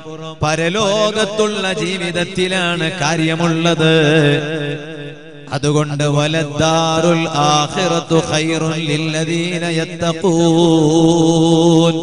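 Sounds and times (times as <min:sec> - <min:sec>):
man chanting a sermon: 0:00.0 - 0:12.0.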